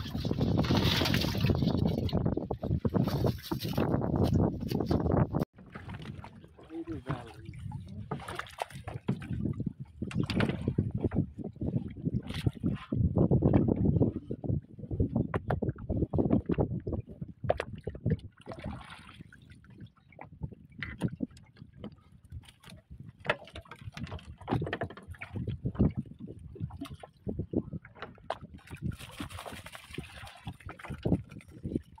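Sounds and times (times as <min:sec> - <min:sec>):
water splash: 0:00.0 - 0:02.2
water splashing: 0:00.0 - 0:02.3, 0:05.6 - 0:09.5, 0:18.4 - 0:19.4, 0:28.6 - 0:32.0.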